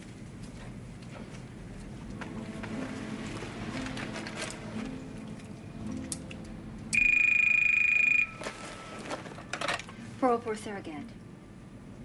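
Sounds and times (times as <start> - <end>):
telephone ringing: 7.0 - 9.1.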